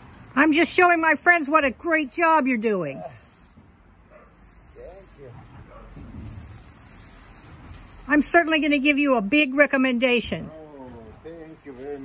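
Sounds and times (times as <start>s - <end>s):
plants being pulled up: 2.9s - 9.7s, 10.8s - 12.0s.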